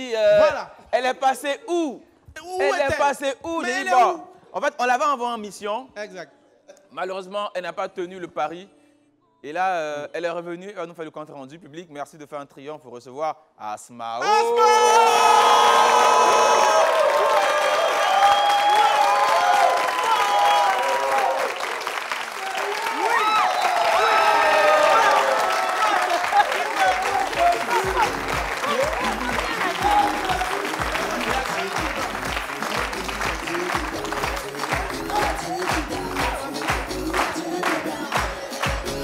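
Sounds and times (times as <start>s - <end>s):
audience clapping and cheering: 14.9s - 39.0s
music playing: 23.8s - 39.0s
steady bass beat: 27.2s - 39.0s.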